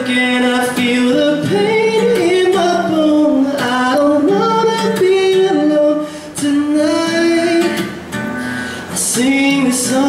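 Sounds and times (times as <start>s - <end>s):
man singing long notes: 0.0s - 7.8s, 8.9s - 10.0s
acoustic guitar: 0.0s - 10.0s.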